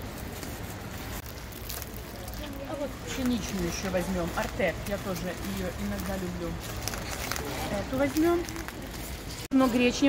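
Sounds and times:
plastic packaging crinkling: 0.1 - 9.5.

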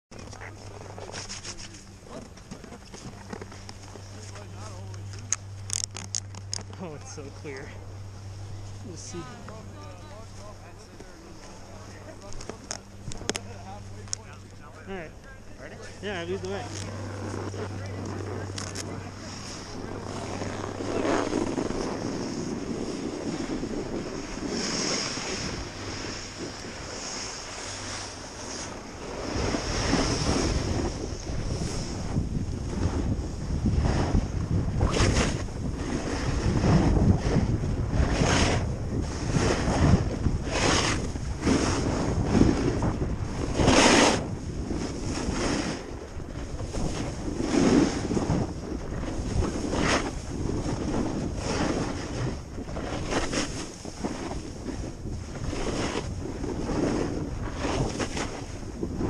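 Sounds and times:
wind on microphone: 0.1 - 59.0
snowboard sliding over snow: 0.2 - 4.9, 8.6 - 12.3, 13.5 - 59.0.

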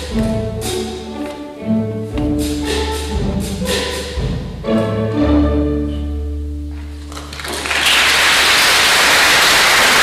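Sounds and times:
audience applause: 7.0 - 10.0.

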